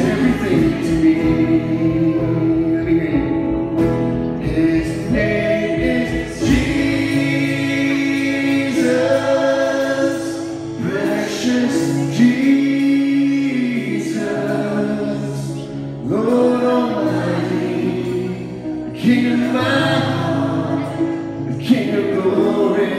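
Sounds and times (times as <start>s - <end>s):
instrumental backing: 0.0s - 22.9s
men singing worship song: 0.0s - 22.9s.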